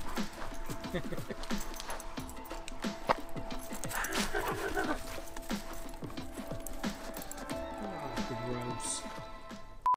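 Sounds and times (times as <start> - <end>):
background music with beat: 0.0 - 9.9.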